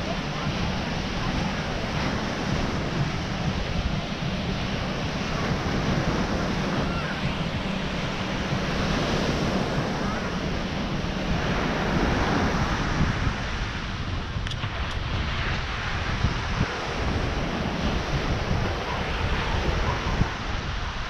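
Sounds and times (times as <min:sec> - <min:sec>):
ocean surf on sandy beach: 0:00.0 - 0:21.0
wind buffeting microphone: 0:00.0 - 0:21.0.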